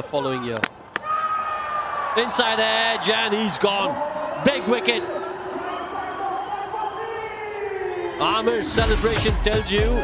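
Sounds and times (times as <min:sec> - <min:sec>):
stadium crowd cheering: 0:00.5 - 0:10.0.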